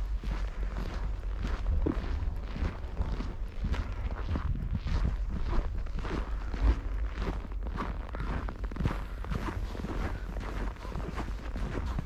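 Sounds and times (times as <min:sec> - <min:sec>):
footsteps in snow: 0:00.0 - 0:12.0
steady low rumble: 0:00.0 - 0:12.0.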